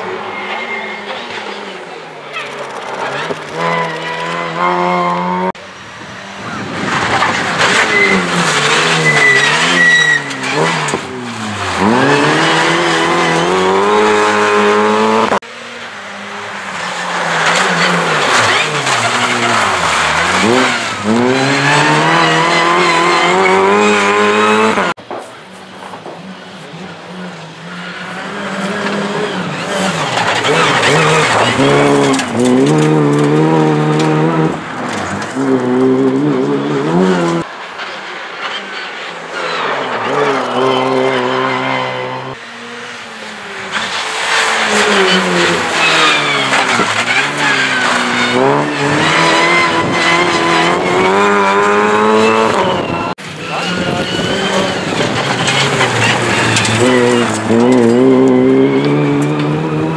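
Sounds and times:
engines revving hard: 0.0s - 25.0s, 26.6s - 59.9s
rally cars passing at speed: 0.0s - 59.9s.

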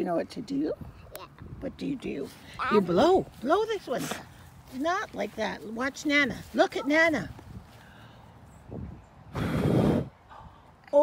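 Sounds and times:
person blowing breath into microphone: 9.3s - 10.4s.

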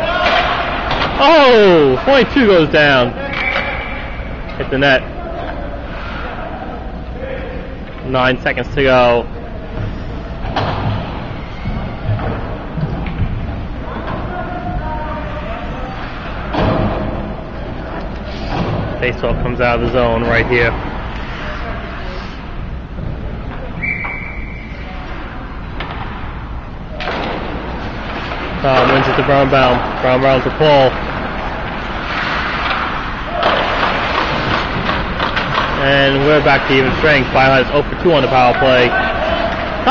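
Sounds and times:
puck and sticks thudding: 0.0s - 2.6s, 9.8s - 14.8s, 25.7s - 39.9s
echoing hall murmur: 0.0s - 39.9s.

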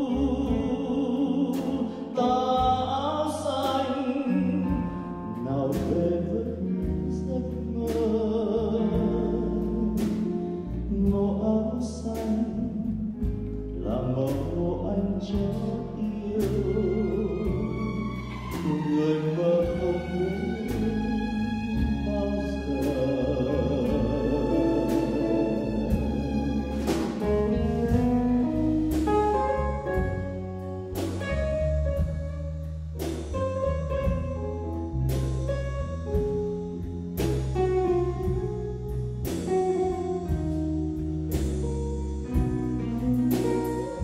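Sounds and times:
man singing: 0.0s - 18.0s, 18.6s - 26.2s
string orchestra with drums and keyboard: 0.0s - 44.0s
chamber ensemble playing chords: 16.0s - 44.0s.

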